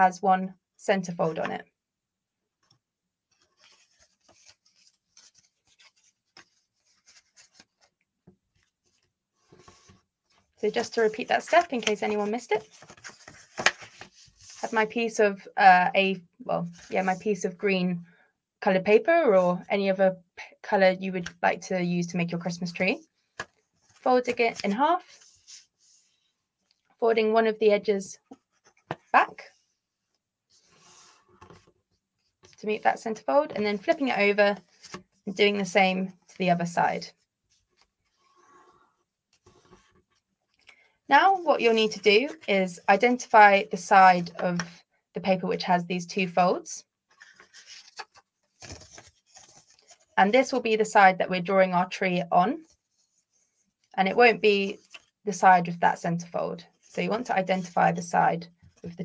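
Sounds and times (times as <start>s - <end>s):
paper rustling and crinkling: 3.3s - 7.9s, 8.5s - 14.7s, 47.1s - 50.2s.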